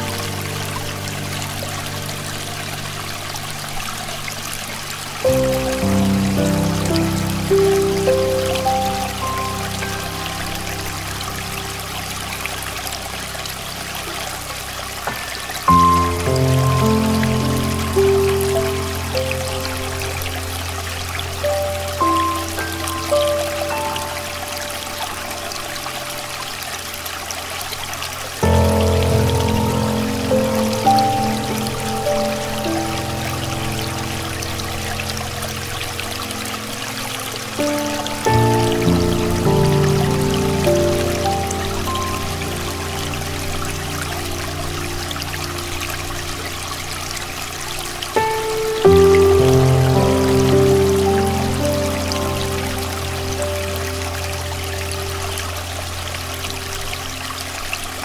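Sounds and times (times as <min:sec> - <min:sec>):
calm piano music: 0:00.0 - 0:58.0
stream water flowing: 0:00.0 - 0:58.0.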